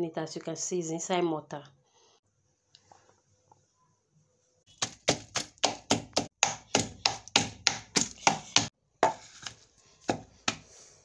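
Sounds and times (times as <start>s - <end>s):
pestle pounding in a mortar: 4.8s - 9.2s.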